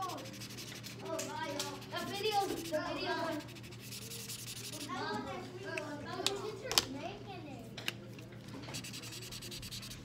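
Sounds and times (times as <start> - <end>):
fast scratchy rubbing on paper: 0.0 - 5.0, 8.7 - 10.0
faint low hum: 0.0 - 10.0.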